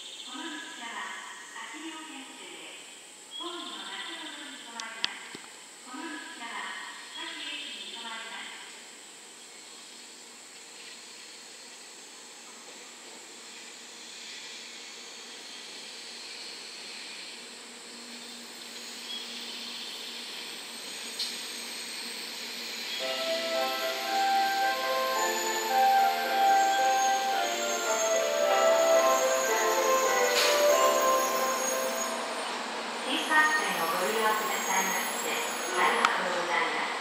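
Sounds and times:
train running hiss: 19.8s - 37.0s
melody: 23.0s - 32.8s.

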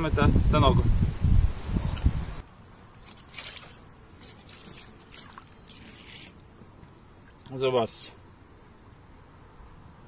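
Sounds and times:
wind on microphone: 0.0s - 2.4s
water trickling and dripping: 2.8s - 6.4s.

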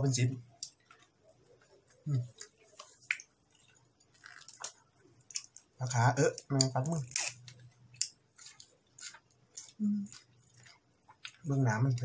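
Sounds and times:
chewing raw meat: 0.6s - 5.7s, 7.4s - 12.0s.

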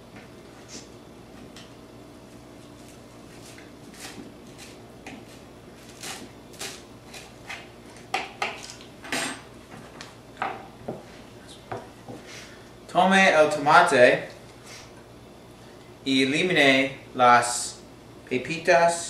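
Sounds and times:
knife chopping herbs: 2.8s - 8.8s.

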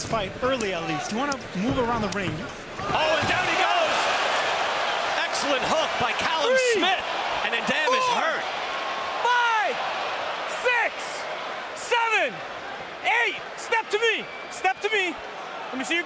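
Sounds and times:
arena crowd noise: 0.0s - 16.0s
referee shouting a count: 2.8s - 4.1s, 5.2s - 8.4s, 9.1s - 16.0s.

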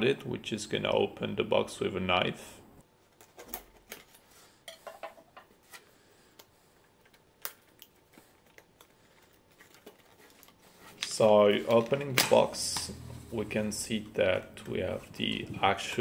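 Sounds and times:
fingers handling cardboard: 8.1s - 12.3s.

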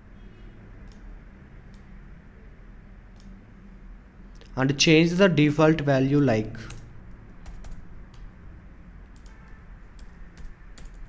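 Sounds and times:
computer keyboard keystrokes: 6.7s - 8.3s, 9.1s - 11.0s.

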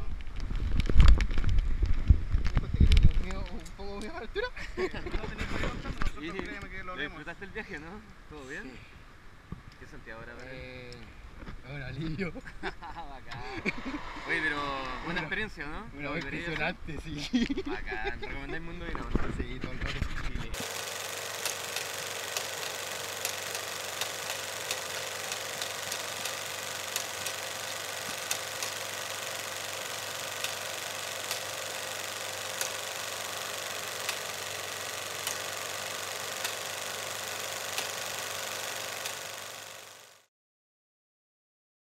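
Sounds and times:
projector hiss and hum: 20.5s - 40.2s.

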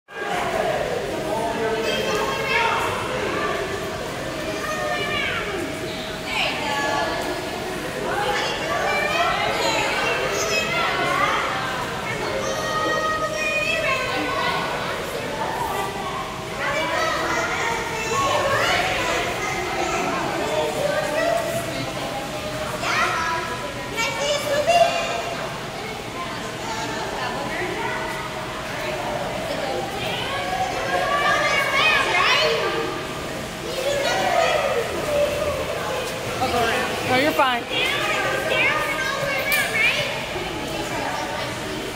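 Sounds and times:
children calling and chattering: 0.1s - 41.9s
pool hall noise: 0.1s - 41.9s.

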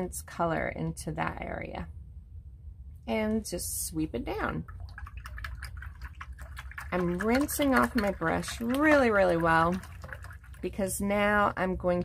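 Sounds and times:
paintbrush rinsed in water: 4.3s - 11.7s.

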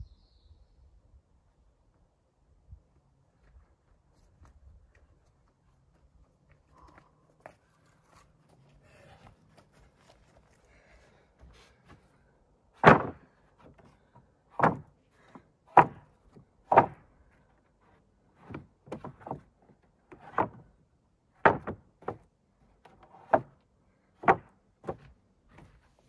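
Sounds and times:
wooden boards knocking onto stack: 12.8s - 13.9s, 14.6s - 14.9s, 15.7s - 16.1s, 16.7s - 17.0s, 18.4s - 19.4s, 20.2s - 20.6s, 21.4s - 22.2s, 23.2s - 23.5s, 24.2s - 25.7s.

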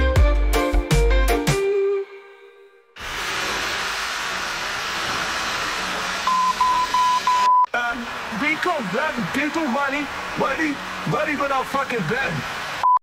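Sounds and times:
static hiss: 3.0s - 13.0s
high beeps: 6.3s - 7.7s
person talking: 7.7s - 12.5s.

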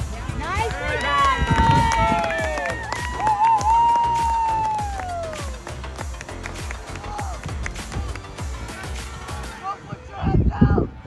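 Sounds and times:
spectators cheering: 0.4s - 8.2s.

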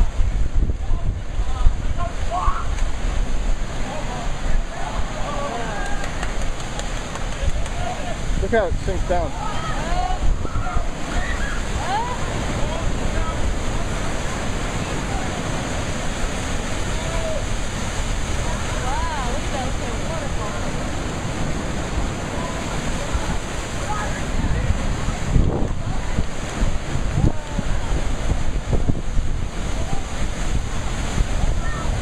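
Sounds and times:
surf crashing over rocks: 0.0s - 32.0s.

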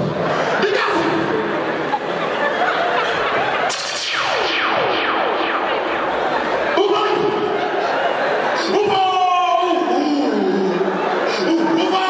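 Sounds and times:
falling electronic swoop: 3.4s - 8.5s.

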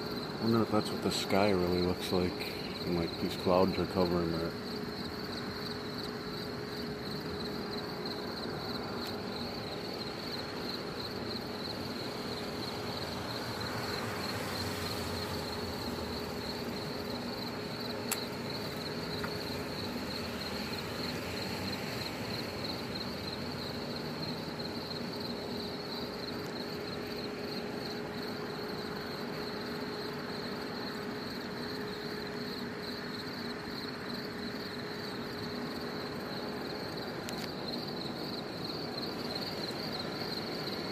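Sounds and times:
insects chirring: 0.0s - 40.9s
click: 37.3s - 37.5s.

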